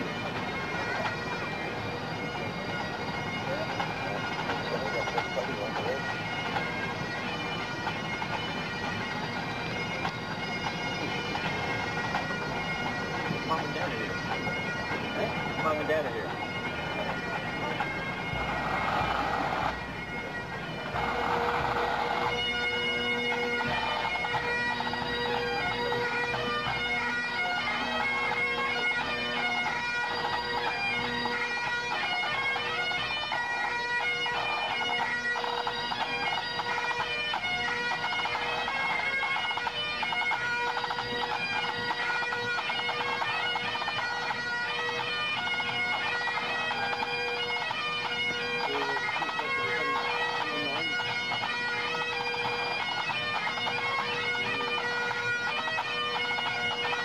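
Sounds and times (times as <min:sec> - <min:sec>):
bagpipes playing: 0:00.0 - 0:57.0.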